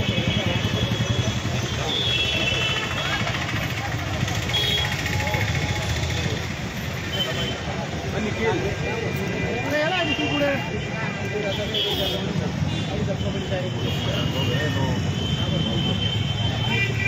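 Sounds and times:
crowd chatter: 0:00.0 - 0:17.0
street traffic rumble: 0:00.0 - 0:17.0.

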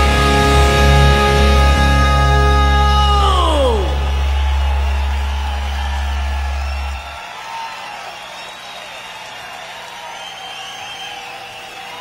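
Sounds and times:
deep low note ringing: 0:00.0 - 0:07.1
rock band chord diving in pitch: 0:00.0 - 0:07.2
audience cheering and whoops: 0:00.0 - 0:12.0.

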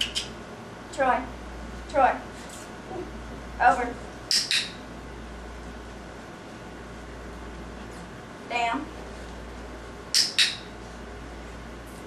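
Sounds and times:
training clicker clicks: 0:04.3 - 0:04.8.

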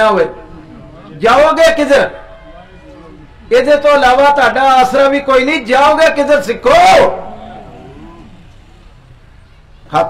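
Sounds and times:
man speaking over public address: 0:00.0 - 0:08.3
faint background noise: 0:00.0 - 0:10.0.

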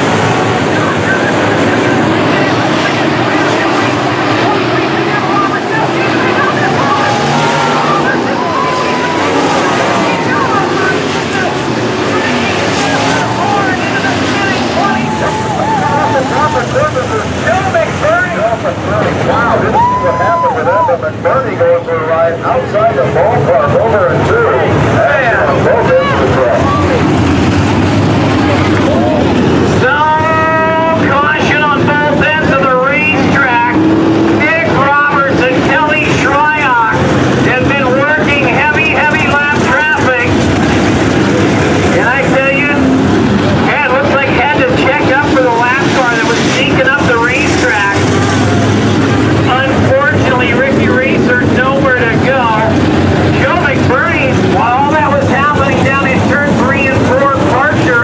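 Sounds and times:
race car engines: 0:00.0 - 0:58.0.

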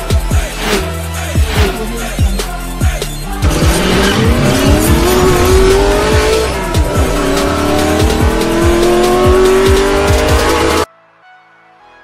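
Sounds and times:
electronic music with steady beat: 0:00.0 - 0:10.9
race car engine accelerating: 0:03.3 - 0:10.9.

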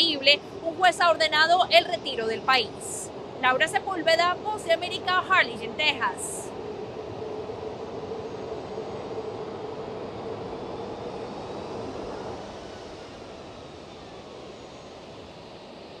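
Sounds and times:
jet engine humming: 0:00.0 - 0:16.0.

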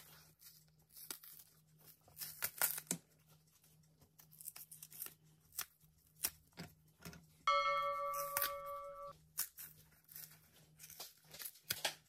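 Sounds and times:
skin tearing: 0:02.1 - 0:03.0
bell-like chime: 0:07.5 - 0:09.1.

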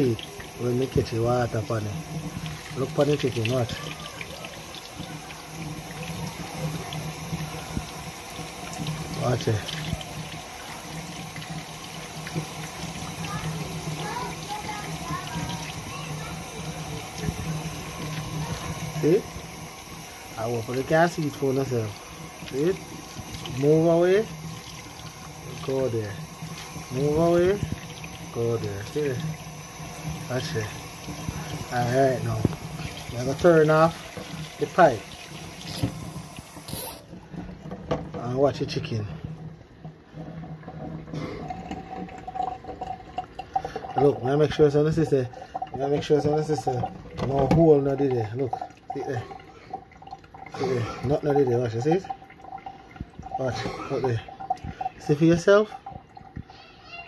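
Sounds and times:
tap water splashing in sink: 0:00.0 - 0:57.0.

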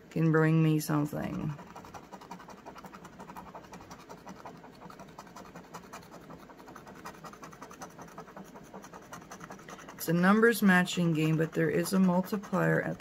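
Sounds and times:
scratcher scraping lottery ticket: 0:00.8 - 0:13.0.

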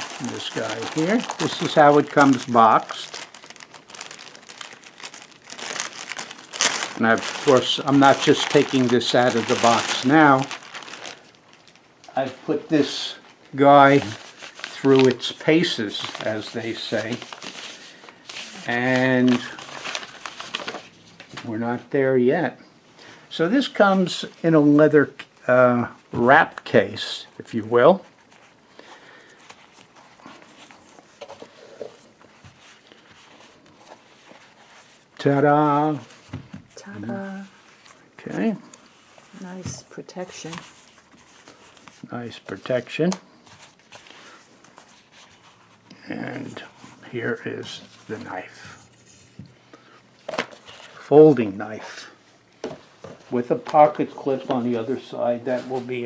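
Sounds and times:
leather and cord rustling: 0:00.0 - 0:11.7
plastic bag crinkling: 0:00.0 - 0:11.9, 0:13.9 - 0:20.9.

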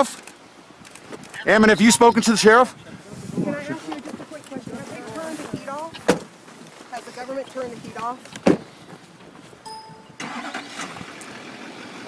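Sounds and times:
voices: 0:01.3 - 0:08.5
truck door slamming: 0:08.4 - 0:08.7.

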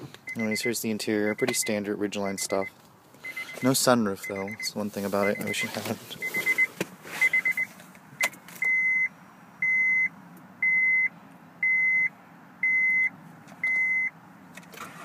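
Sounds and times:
dashboard warning chime pulses: 0:00.3 - 0:07.7
steady warning beeps: 0:00.3 - 0:14.2.

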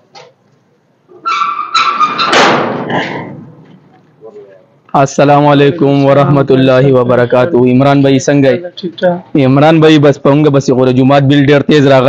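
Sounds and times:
metal door scraping rattle: 0:01.1 - 0:03.6
metallic hinge squeals: 0:01.2 - 0:02.4.

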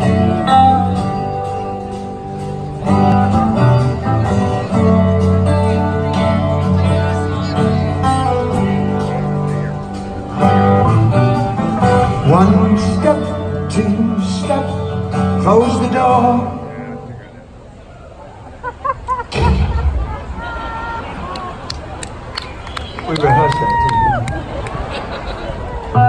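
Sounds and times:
live rock band: 0:00.0 - 0:17.2
sliding bending guitar notes: 0:00.0 - 0:17.3.

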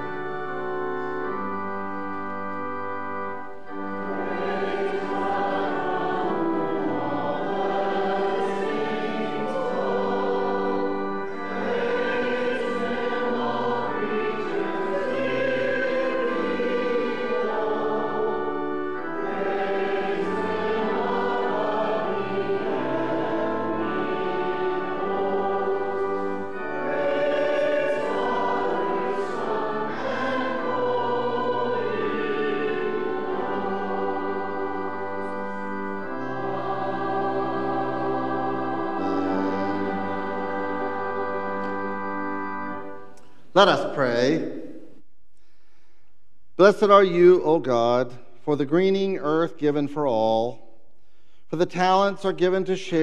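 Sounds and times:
congregation singing a hymn: 0:00.0 - 0:45.0
organ accompaniment: 0:00.0 - 0:53.0.

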